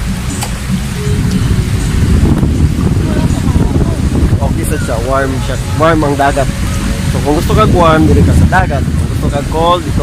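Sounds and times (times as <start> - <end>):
small waves washing on beach: 0.0 - 10.0
wind buffeting microphone: 0.0 - 10.0.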